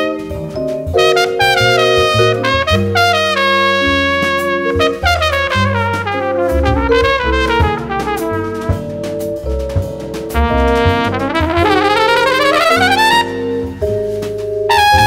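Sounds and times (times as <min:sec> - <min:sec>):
drum kit: 0:00.0 - 0:15.0
held bass notes: 0:00.0 - 0:15.0
horn melody: 0:00.0 - 0:15.0.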